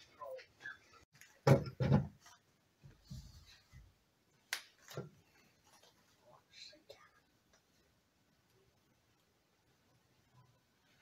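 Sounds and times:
faint whispering: 5.7s - 7.9s.

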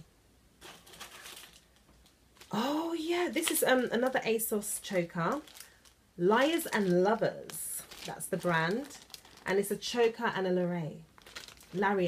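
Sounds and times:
plastic packet rustling: 0.6s - 12.0s.

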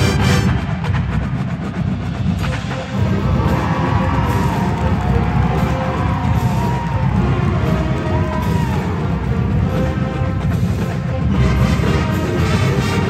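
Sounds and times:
marching band playing: 0.0s - 13.0s.

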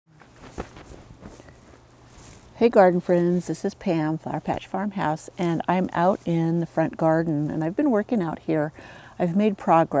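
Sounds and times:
low steady hum: 0.1s - 10.0s
soft handling knocks and rustles: 0.2s - 2.6s.

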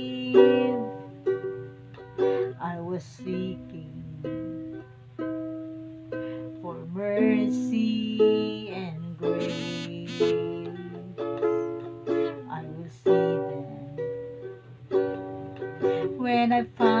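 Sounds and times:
ukulele strummed chords: 0.0s - 17.0s.

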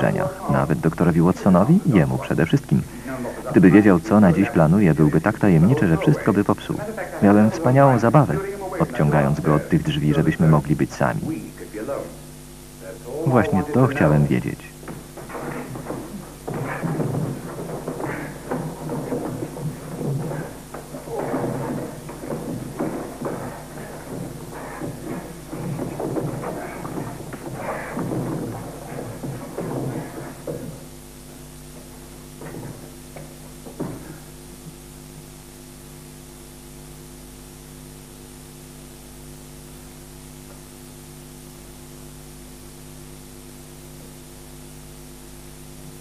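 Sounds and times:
electrical mains hum: 0.0s - 46.0s.

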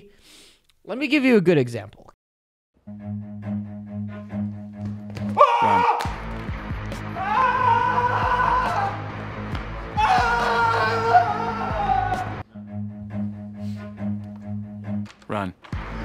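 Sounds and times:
background music: 2.8s - 16.0s
person screaming: 5.4s - 6.2s, 7.1s - 9.0s, 10.0s - 12.4s.

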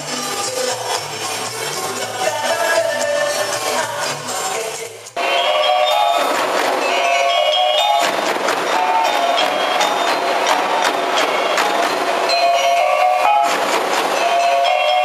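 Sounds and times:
drums beating steady rhythm: 0.0s - 15.0s.

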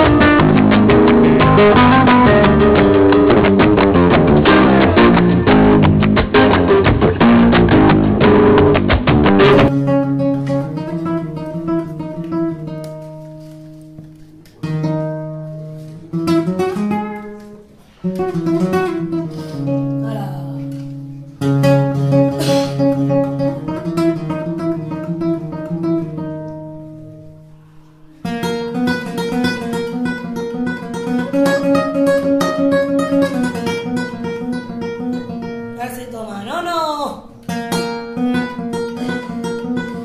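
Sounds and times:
flamenco guitar playing: 0.0s - 40.0s.

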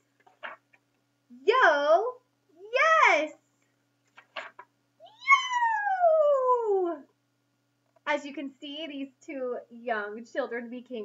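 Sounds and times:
woman calling out: 1.4s - 3.4s.

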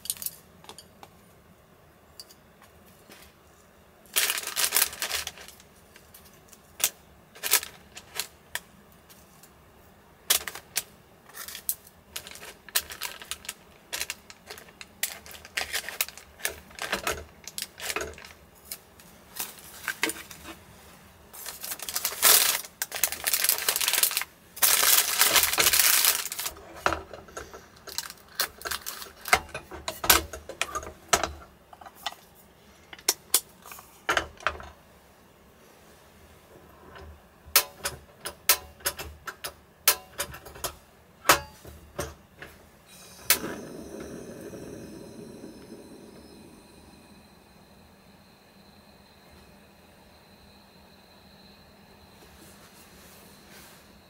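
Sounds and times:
paper rustling and crinkling: 4.1s - 6.1s, 11.3s - 17.0s, 21.4s - 26.6s.

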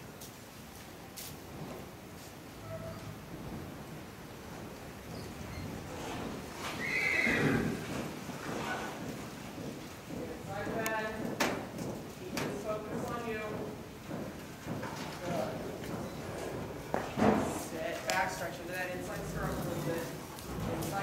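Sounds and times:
hoofbeats on sand: 6.0s - 21.0s
horse whinnying: 6.1s - 9.0s.

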